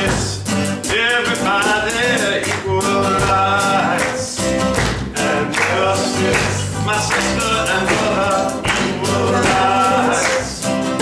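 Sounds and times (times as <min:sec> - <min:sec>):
acoustic guitar: 0:00.0 - 0:11.0
congregation singing along: 0:00.0 - 0:11.0
man singing: 0:00.0 - 0:11.0.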